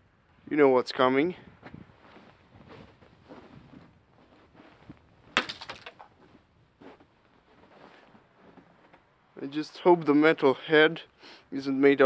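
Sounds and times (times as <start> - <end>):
breaking ice crackle: 5.4 - 6.0
hammer cracking ice ball: 5.4 - 6.0.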